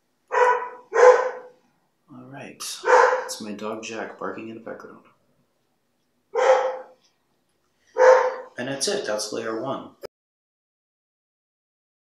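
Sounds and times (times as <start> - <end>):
dog barking: 0.3 - 1.6, 2.8 - 3.3, 6.3 - 7.0, 7.9 - 8.6.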